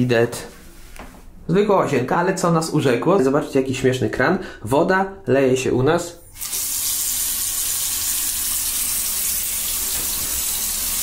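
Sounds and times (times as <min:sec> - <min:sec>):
tap water running into basin: 0:06.4 - 0:11.0.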